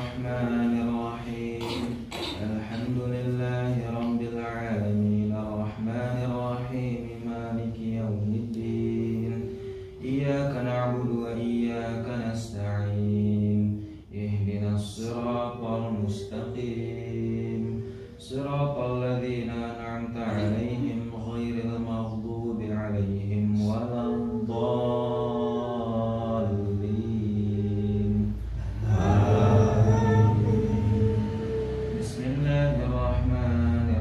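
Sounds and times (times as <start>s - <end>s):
man chanting prayer: 0.0s - 34.0s.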